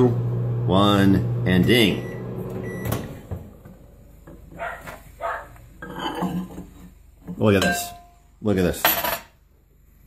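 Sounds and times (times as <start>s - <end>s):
microwave door opening: 2.5s - 3.6s.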